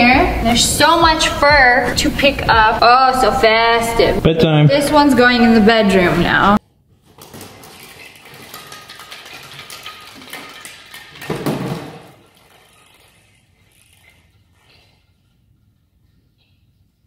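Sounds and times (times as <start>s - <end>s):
balls clicking on tile floor: 7.0s - 15.0s.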